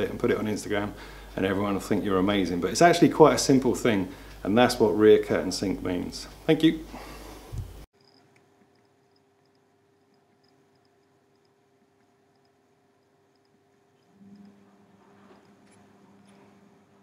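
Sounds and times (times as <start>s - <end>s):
faint steady hum: 0.0s - 17.0s
low room noise: 0.0s - 17.0s.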